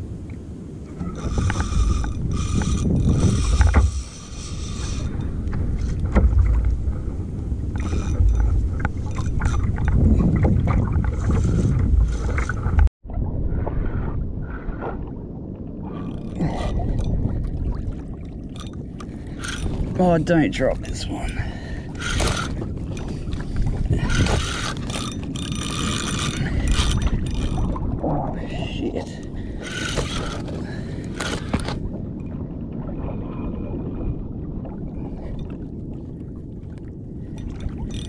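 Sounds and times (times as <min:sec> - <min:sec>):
water slapping kayak hull: 0:00.0 - 0:15.2, 0:15.8 - 0:38.0
wind buffeting microphone: 0:00.0 - 0:38.0
fishing reel winding and clicking: 0:01.2 - 0:05.1, 0:07.7 - 0:08.5, 0:09.1 - 0:10.0, 0:18.6 - 0:19.8, 0:22.0 - 0:23.1, 0:24.0 - 0:27.7, 0:29.6 - 0:31.8, 0:37.4 - 0:38.0.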